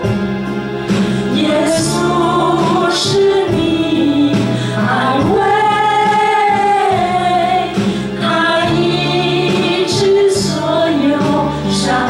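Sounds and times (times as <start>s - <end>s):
women singing worship song: 1.2s - 12.0s.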